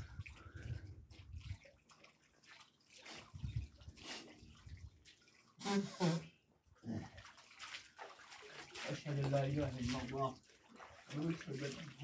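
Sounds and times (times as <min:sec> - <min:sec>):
water splashing: 0:00.0 - 0:12.0.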